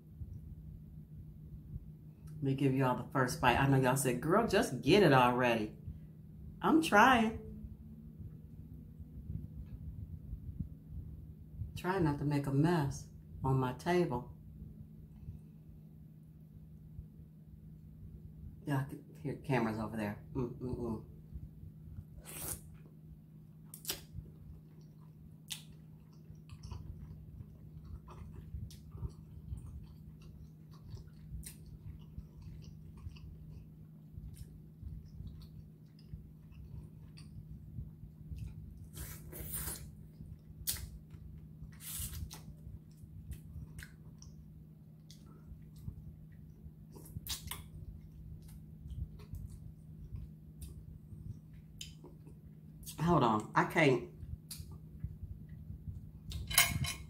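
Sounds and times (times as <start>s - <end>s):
low hum: 0.0s - 57.0s
chewing with wet mouth smacks: 23.7s - 53.0s.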